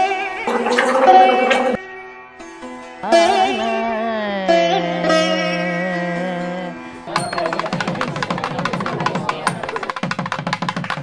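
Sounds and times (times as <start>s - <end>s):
plucked-string music: 0.0s - 10.0s
person gargling water: 0.5s - 1.8s, 3.1s - 8.0s.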